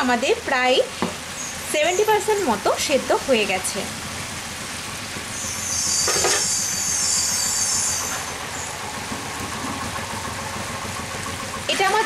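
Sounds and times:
curry bubbling and sizzling: 0:00.2 - 0:12.0.

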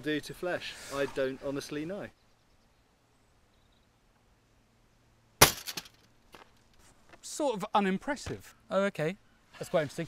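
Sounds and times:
short rattle: 0:05.4 - 0:06.7.

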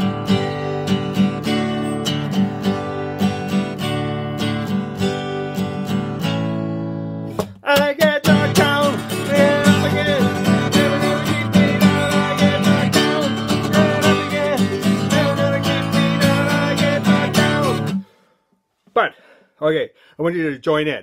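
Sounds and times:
acoustic guitar strumming: 0:00.0 - 0:18.2
wordless singing: 0:07.6 - 0:18.1.

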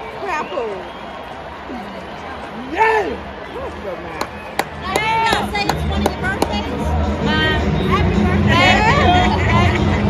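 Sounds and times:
background hubbub: 0:00.0 - 0:10.0
sharp knocks or claps: 0:04.2 - 0:06.6.

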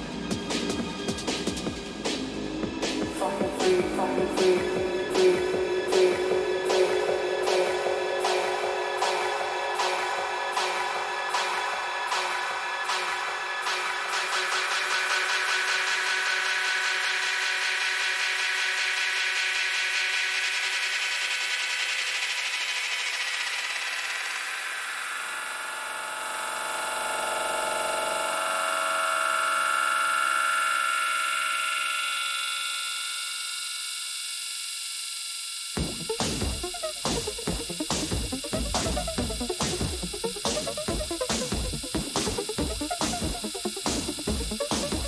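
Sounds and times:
electronic dance beat: 0:00.0 - 0:24.8, 0:35.8 - 0:45.0
buzzing synth tones and noise: 0:03.2 - 0:45.0.

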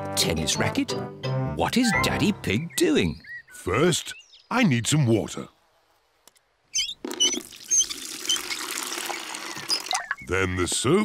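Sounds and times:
water filling metal bucket: 0:07.4 - 0:10.2.

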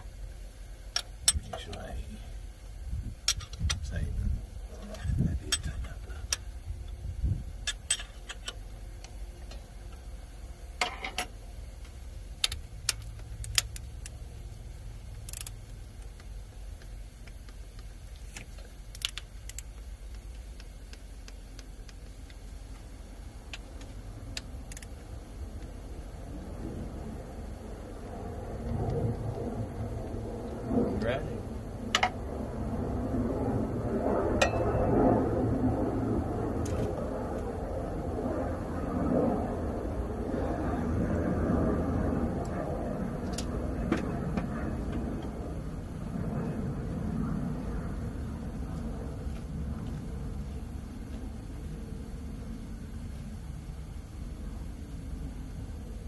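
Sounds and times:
low rumble: 0:00.0 - 0:56.0
torque wrench clicks: 0:15.2 - 0:22.4, 0:23.5 - 0:25.0.

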